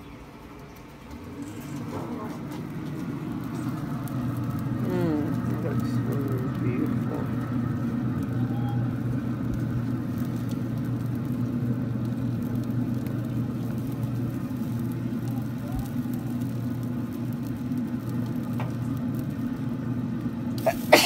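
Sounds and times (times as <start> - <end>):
fan humming and whirring: 0.0 - 21.0.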